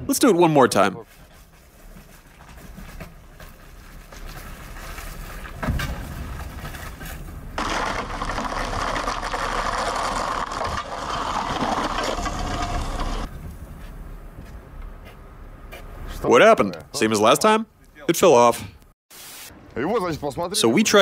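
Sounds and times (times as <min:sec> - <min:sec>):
plastic bottles rumbling on asphalt: 0:05.5 - 0:13.3.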